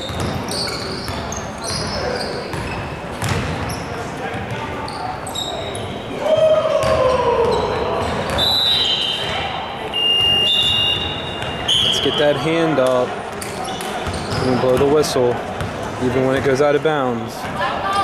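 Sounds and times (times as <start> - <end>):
sneakers squeaking on court: 0.0 - 6.1, 6.8 - 16.6
basketball bouncing on hardwood: 2.5 - 3.6
players calling out: 3.6 - 16.6.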